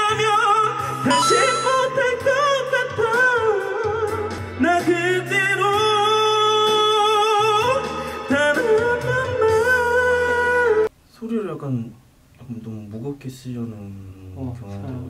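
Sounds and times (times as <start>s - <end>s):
man singing pop ballad: 0.0s - 10.9s
backing track: 0.9s - 3.1s.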